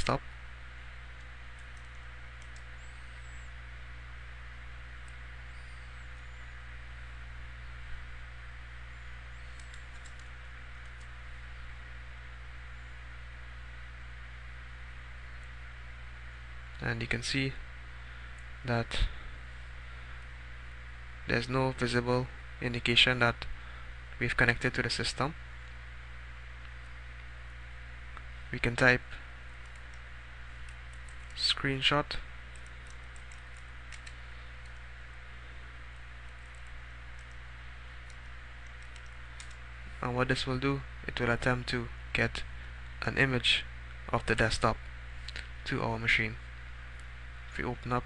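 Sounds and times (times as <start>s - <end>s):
low electrical hum: 0.0s - 48.0s.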